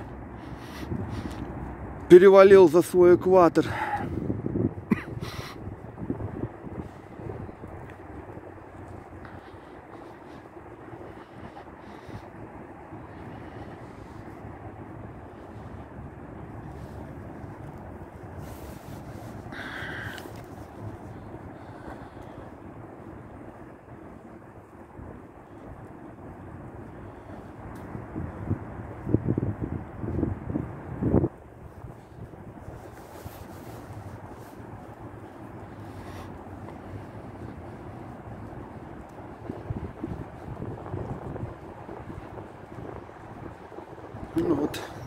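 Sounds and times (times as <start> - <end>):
distant city traffic hum: 0.0 - 45.0
wind on microphone: 0.0 - 45.0
crow cawing: 19.6 - 20.2.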